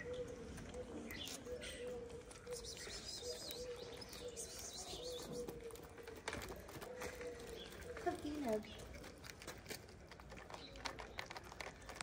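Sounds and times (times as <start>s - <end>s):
pigeon cooing: 0.0s - 9.2s
small birds chirping: 0.0s - 12.0s.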